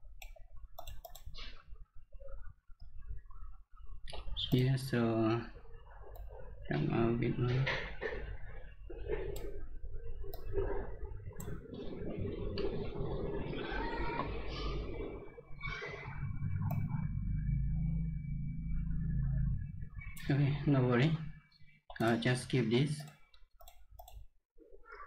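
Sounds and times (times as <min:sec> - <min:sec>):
low room hum: 0:00.0 - 0:25.0
computer mouse clicks: 0:00.1 - 0:01.6, 0:09.3 - 0:09.6, 0:11.4 - 0:11.6, 0:16.6 - 0:16.9, 0:23.0 - 0:24.3.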